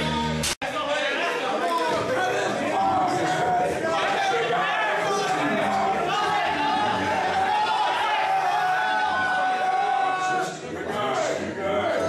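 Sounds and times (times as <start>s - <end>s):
people talking and calling out: 0.0s - 12.0s.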